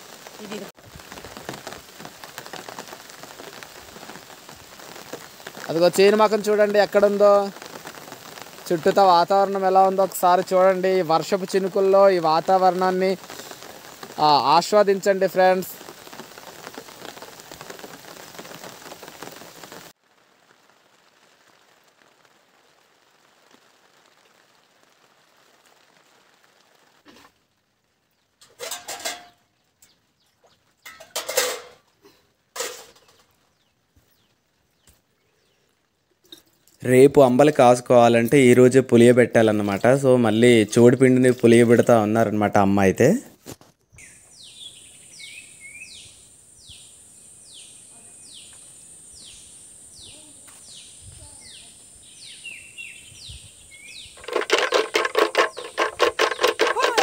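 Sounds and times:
faint hiss: 0.0s - 57.0s
steady rain falling: 0.0s - 57.0s
brief clattering: 54.2s - 57.0s.

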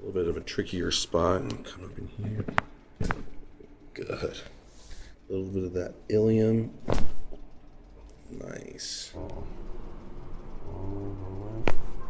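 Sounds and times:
man humming low: 10.6s - 11.8s.

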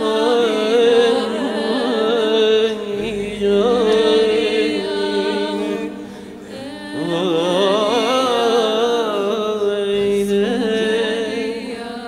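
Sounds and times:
voices singing unaccompanied: 0.0s - 12.0s.

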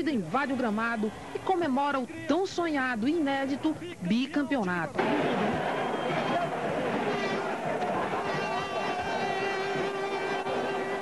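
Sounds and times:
crowd chattering and shouting: 0.0s - 11.0s
laughter: 7.7s - 9.2s.

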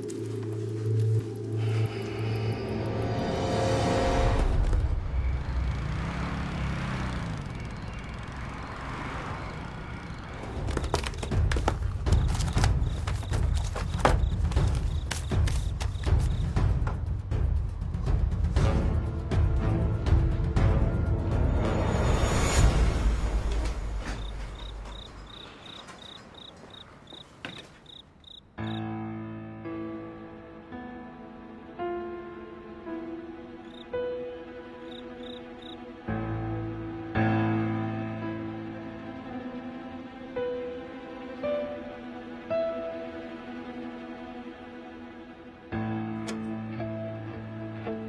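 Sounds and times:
background music: 0.0s - 6.5s, 7.1s - 25.5s, 28.4s - 48.0s
crickets chirping: 0.0s - 16.7s, 22.6s - 28.8s, 33.6s - 34.0s, 34.7s - 36.0s
road traffic rumble: 0.0s - 17.0s, 19.7s - 28.6s
vehicle engine passing: 2.7s - 11.9s.

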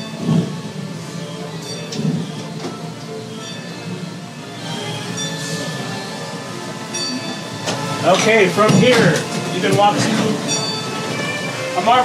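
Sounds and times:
streetcar rumbling on rails: 0.0s - 12.0s.

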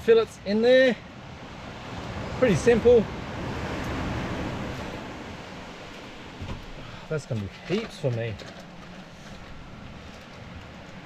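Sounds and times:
steady wind: 0.0s - 11.0s
surf on a beach: 0.0s - 11.0s.

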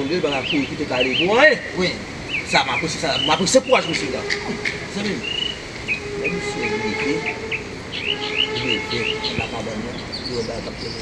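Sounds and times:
faint steady hum: 0.0s - 11.0s
small birds chirping: 0.0s - 11.0s.

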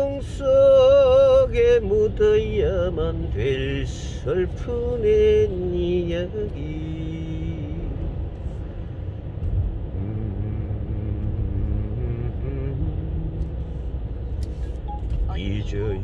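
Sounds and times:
car engine and tyres rumbling: 0.0s - 16.0s.

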